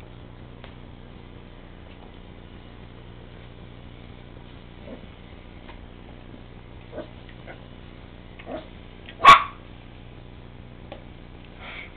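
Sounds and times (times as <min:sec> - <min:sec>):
puppy barking: 0:08.4 - 0:09.7.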